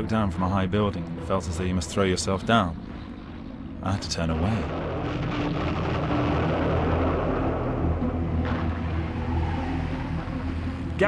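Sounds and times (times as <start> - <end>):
aircraft engine drone: 0.0 - 11.0
low battle rumble: 0.0 - 11.0.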